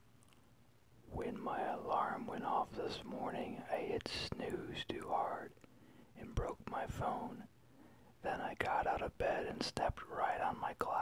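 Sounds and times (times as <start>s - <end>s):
person whispering: 1.1s - 5.6s, 6.2s - 7.5s, 8.2s - 11.0s.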